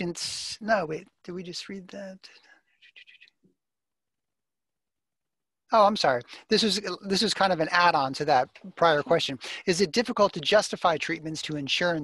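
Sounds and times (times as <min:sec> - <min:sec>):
person speaking: 0:00.0 - 0:03.4, 0:05.7 - 0:12.0.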